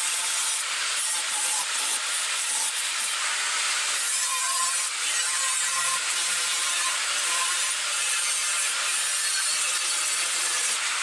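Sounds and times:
angle grinder cutting metal: 0:00.0 - 0:11.0.

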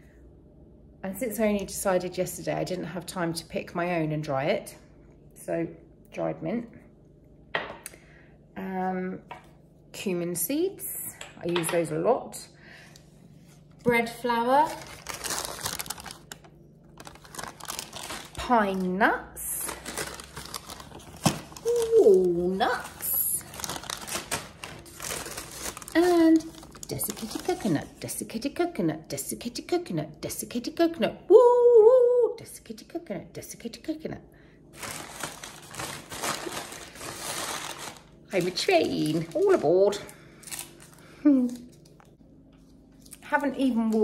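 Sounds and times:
paper bag crinkling: 0:14.4 - 0:27.9, 0:34.8 - 0:42.0.

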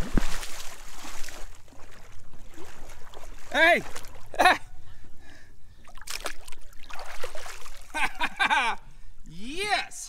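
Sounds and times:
shovel splashing in water: 0:00.0 - 0:04.3, 0:05.9 - 0:07.9
person calling out: 0:03.5 - 0:04.5, 0:09.3 - 0:10.0.

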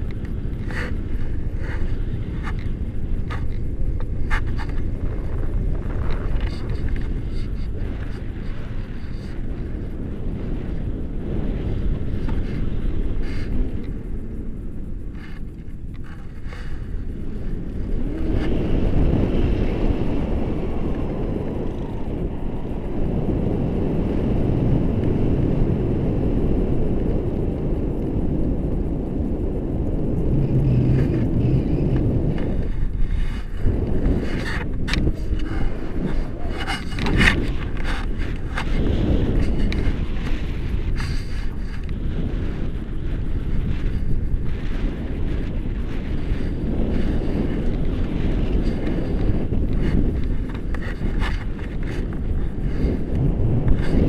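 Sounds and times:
sharp gust crackles: 0:00.0 - 0:54.0
wind buffeting microphone: 0:00.0 - 0:54.0.

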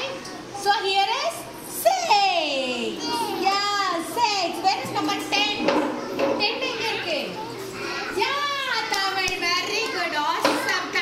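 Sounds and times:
young children talking: 0:01.9 - 0:11.0.

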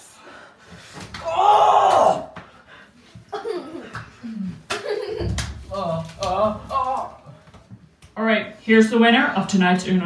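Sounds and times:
loud drawn-out shout: 0:01.2 - 0:02.4.

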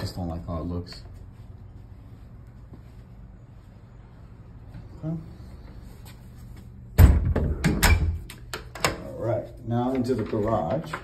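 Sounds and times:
door thump: 0:07.0 - 0:08.2.

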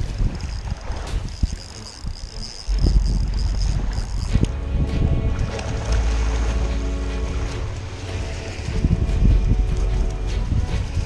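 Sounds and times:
wind buffeting microphone: 0:00.0 - 0:11.0
music with sustained tones: 0:04.0 - 0:11.0.

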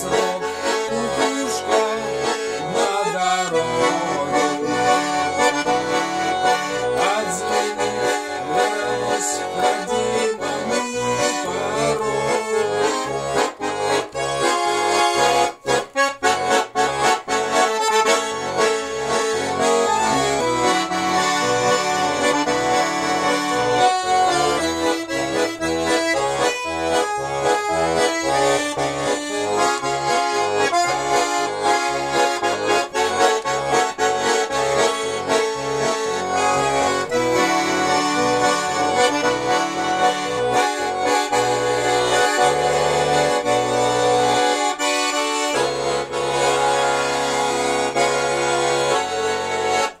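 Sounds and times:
button accordion playing: 0:00.0 - 0:50.0.

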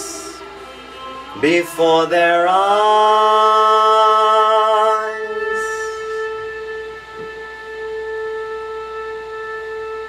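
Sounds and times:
person singing cabaret song: 0:00.0 - 0:07.0
long steady instrument note: 0:00.0 - 0:10.0.

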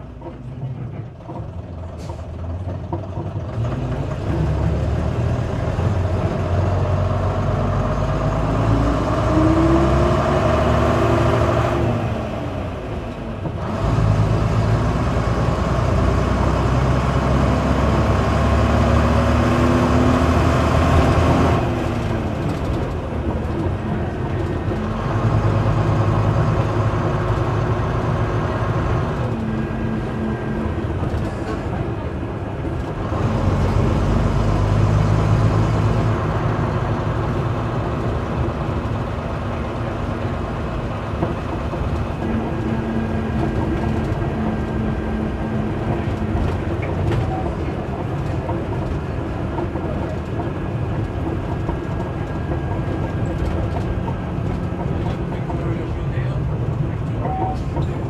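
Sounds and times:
bus diesel engine under load: 0:00.0 - 0:58.0.

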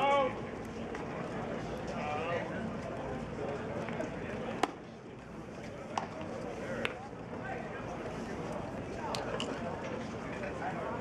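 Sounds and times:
crowd chatter: 0:00.0 - 0:11.0.

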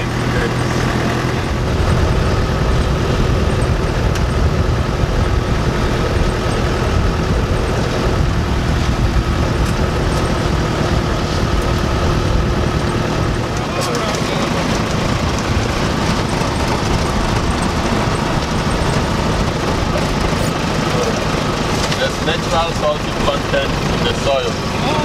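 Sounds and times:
jeep engine running: 0:00.0 - 0:25.0.

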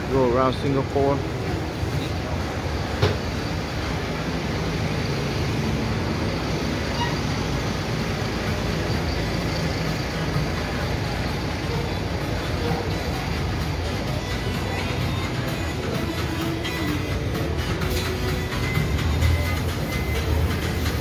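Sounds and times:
buses and traffic rumble: 0:00.0 - 0:21.0.

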